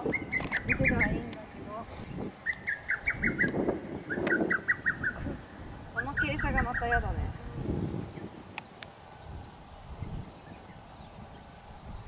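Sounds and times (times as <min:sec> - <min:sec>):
songbird singing: 0:00.0 - 0:12.0
sharp click: 0:04.2 - 0:04.4.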